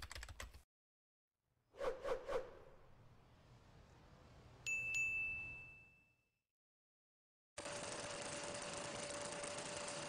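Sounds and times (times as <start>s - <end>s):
high bell-like ding: 4.7s - 6.2s.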